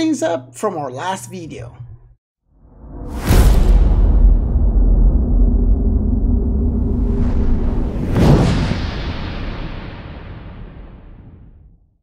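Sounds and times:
deep rumble: 2.7 - 11.8.

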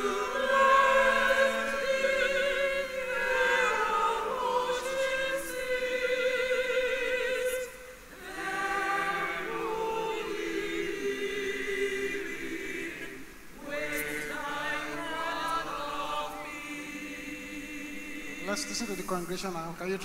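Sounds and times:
choir singing a hymn: 0.0 - 20.0.

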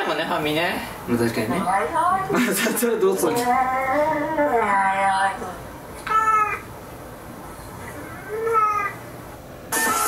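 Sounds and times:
cat meowing: 6.0 - 6.7, 7.8 - 9.0.

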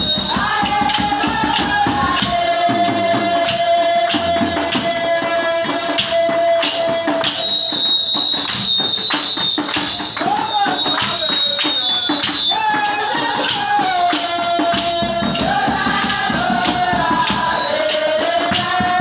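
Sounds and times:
handclaps: 0.0 - 19.0
shaken percussion: 0.0 - 19.0
voices singing: 0.0 - 19.0.

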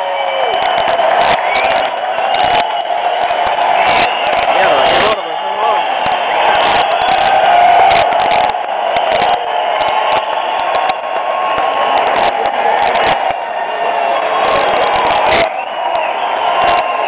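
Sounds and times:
crowd cheering and shouting: 0.0 - 17.0
hand claps: 0.0 - 17.0.

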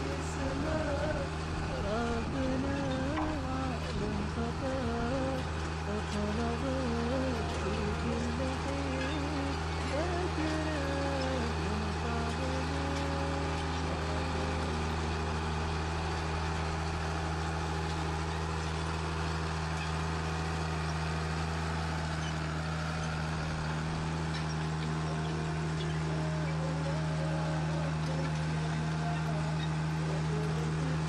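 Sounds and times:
heavy machinery engine drone: 0.0 - 31.0.

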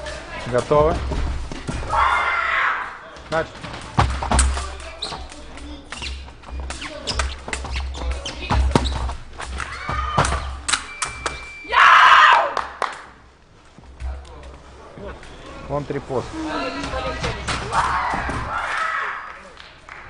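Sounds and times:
footwork stamps: 3.1 - 11.5.

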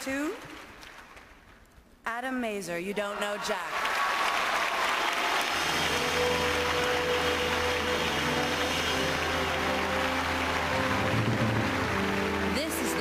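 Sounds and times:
audience applauding: 0.4 - 1.6, 3.1 - 13.0
band playing held chords: 5.5 - 13.0.

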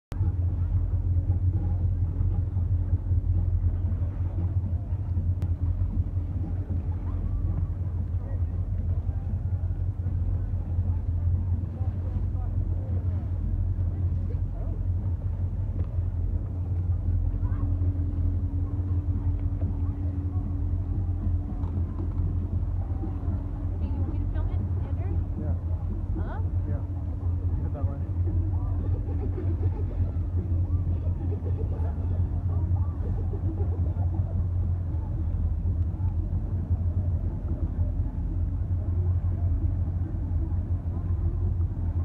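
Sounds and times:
motorboat engine running: 0.1 - 42.0.

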